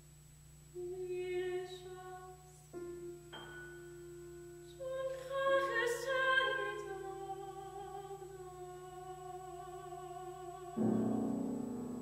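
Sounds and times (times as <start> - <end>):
soft sustained piano: 1.4 - 12.0.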